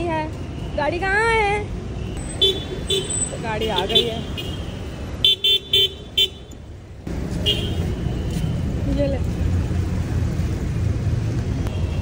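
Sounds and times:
traffic rumble: 0.0s - 12.0s
car horn beeps: 7.4s - 8.5s.

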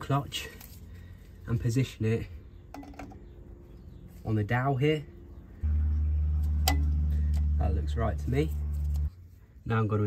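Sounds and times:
steady low hum: 0.7s - 9.7s.

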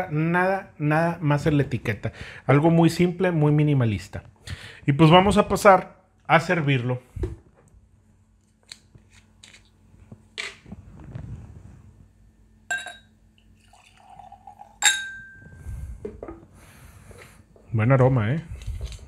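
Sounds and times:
glass clinks: 12.7s - 13.1s, 14.0s - 15.6s.

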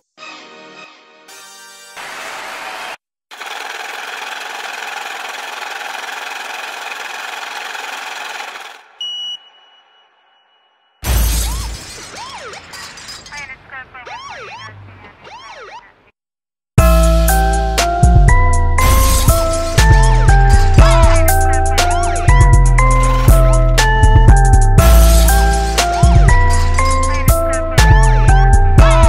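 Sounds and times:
brief high beep: 9.0s - 11.0s.

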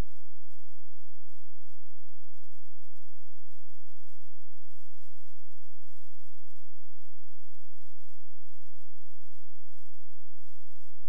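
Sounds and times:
low electrical hum and hiss: 0.0s - 11.0s.

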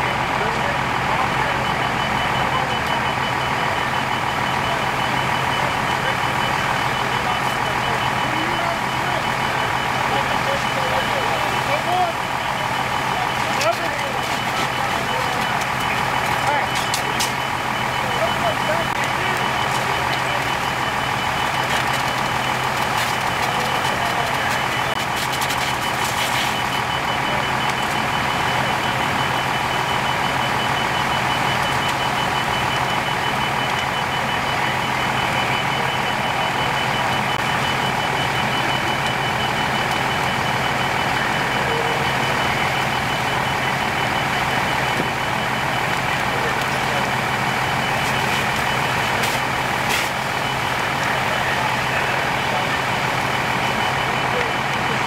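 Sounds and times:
diesel engine running: 0.0s - 55.0s
high-pitched alarm beeping: 0.0s - 55.0s
sharp crackles: 3.9s - 36.7s, 37.4s - 55.0s.

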